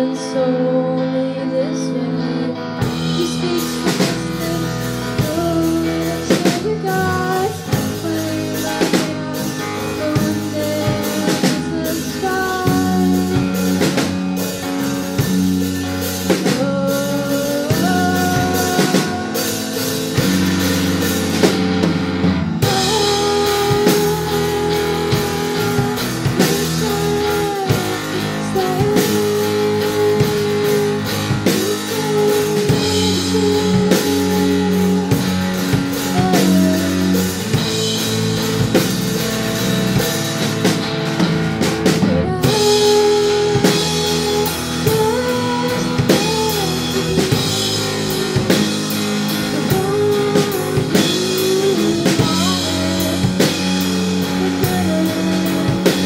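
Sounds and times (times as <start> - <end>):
electric bass: 0.0 - 56.0
electric guitar: 0.0 - 56.0
rock band playing: 0.0 - 56.0
drum kit beat: 2.8 - 56.0.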